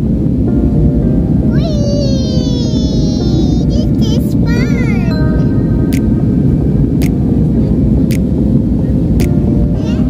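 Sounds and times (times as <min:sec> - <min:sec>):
jet engine cabin rumble: 0:00.0 - 0:10.0.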